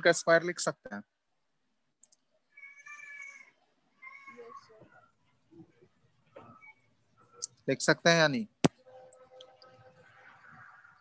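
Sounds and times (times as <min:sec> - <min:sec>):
cat meowing: 0:02.5 - 0:04.8.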